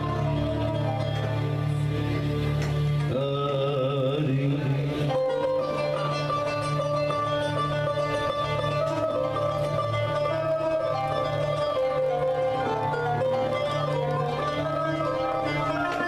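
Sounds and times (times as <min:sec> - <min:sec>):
band with keyboards playing: 0:00.0 - 0:16.0.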